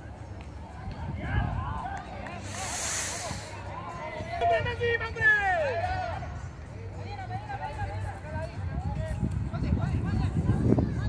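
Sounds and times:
brief hiss: 2.4s - 3.7s.

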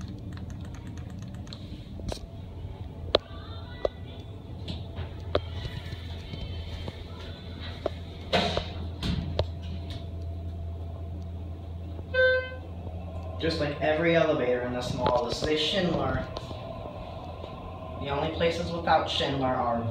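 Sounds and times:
scattered clicks: 0.0s - 2.3s
elevator hum: 0.0s - 19.9s.

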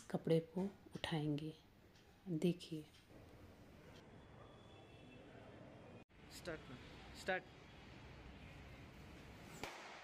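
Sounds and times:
sharp snap: 9.6s - 10.0s.

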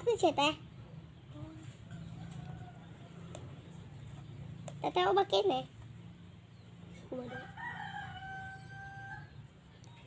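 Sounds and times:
rooster crowing: 1.9s - 3.4s, 7.2s - 9.5s.

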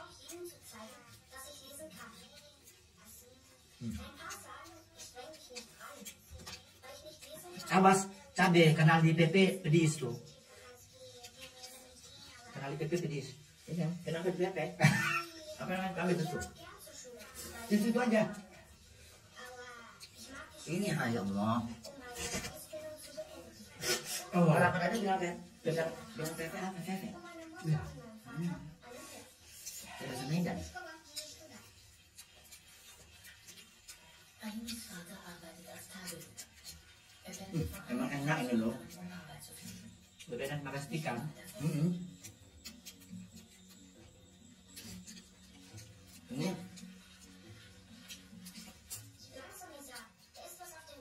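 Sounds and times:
people chewing: 0.0s - 51.0s
people eating: 0.0s - 51.0s.

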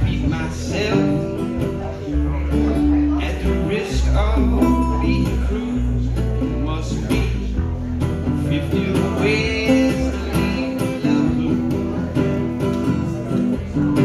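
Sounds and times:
acoustic guitar strumming: 0.0s - 14.0s.

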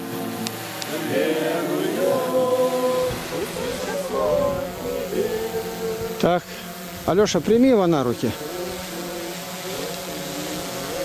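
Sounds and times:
group singing a hymn: 0.0s - 7.0s, 8.0s - 11.0s.

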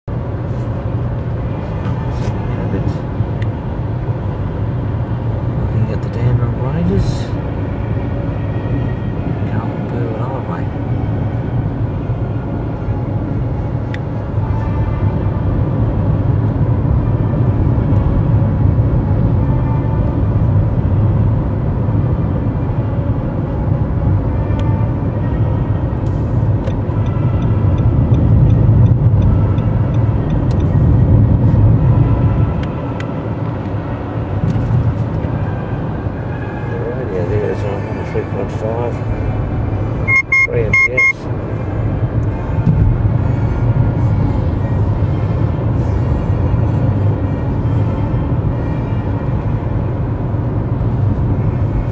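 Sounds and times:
car cabin road and engine rumble: 0.1s - 51.9s
faint car radio: 0.6s - 15.2s, 22.6s - 51.9s.

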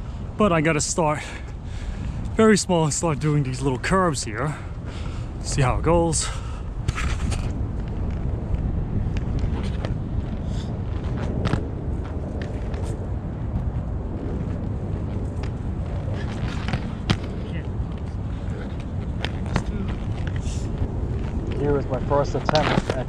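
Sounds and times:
skate wheels rolling on concrete: 0.0s - 23.0s
wind on microphone: 0.0s - 23.0s.

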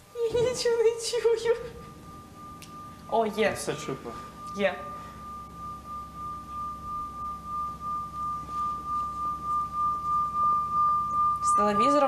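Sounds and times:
singing bowl ringing: 0.0s - 12.0s.

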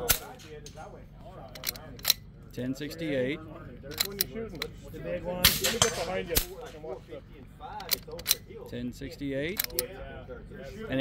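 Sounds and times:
rifle shot crack: 0.0s - 0.4s, 5.4s - 6.7s.

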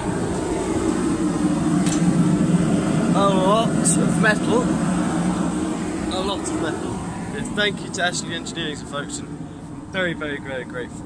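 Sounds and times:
gas burner roaring: 0.0s - 11.0s.

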